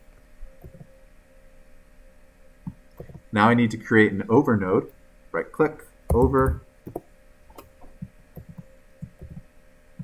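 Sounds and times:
faint steady hum: 0.0s - 10.0s
keyboard and mouse clicks: 0.6s - 0.9s, 2.6s - 3.2s, 6.1s - 9.5s.

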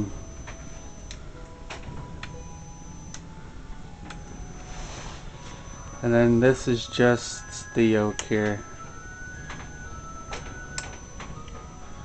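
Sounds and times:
faint high whine: 0.0s - 12.0s
low electrical hum: 0.0s - 12.0s.

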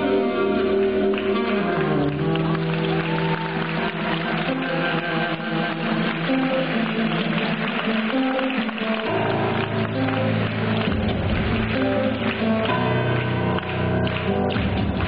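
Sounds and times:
low bass line: 9.1s - 15.0s.

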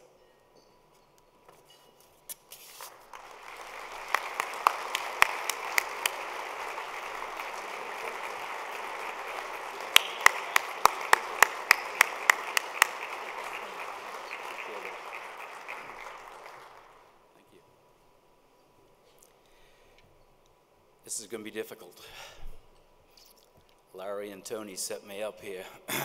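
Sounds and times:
sharp claps close to microphone: 2.8s - 17.1s
audience applauding: 2.8s - 17.2s.

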